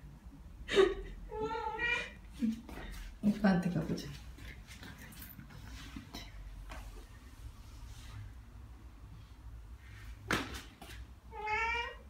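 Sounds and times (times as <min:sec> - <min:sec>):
cat meowing: 0:01.3 - 0:02.2, 0:11.3 - 0:12.0.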